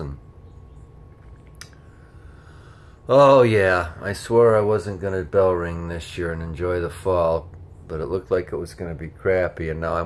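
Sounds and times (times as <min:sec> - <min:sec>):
faint low hum: 0:00.0 - 0:10.0
soft click: 0:01.2 - 0:01.8.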